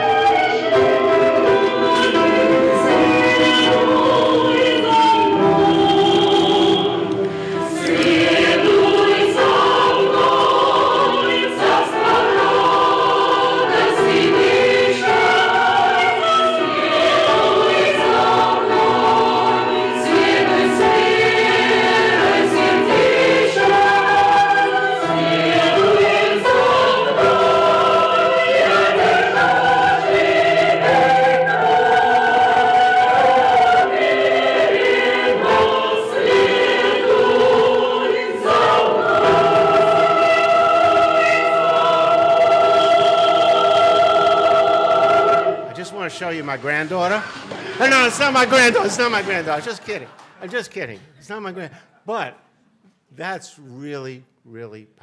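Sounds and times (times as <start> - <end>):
choir singing sustained notes: 0.0 - 46.1.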